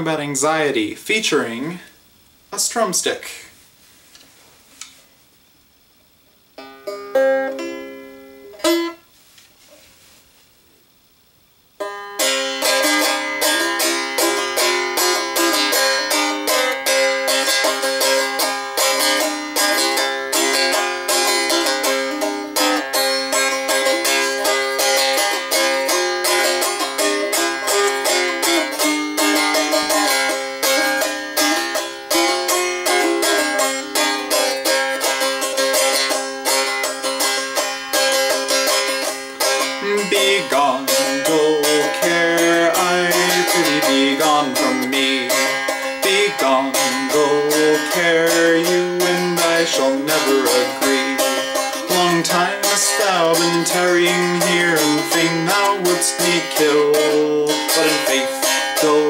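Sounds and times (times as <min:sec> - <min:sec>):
plucked strumstick melody: 0:06.6 - 0:09.1, 0:11.8 - 0:59.0.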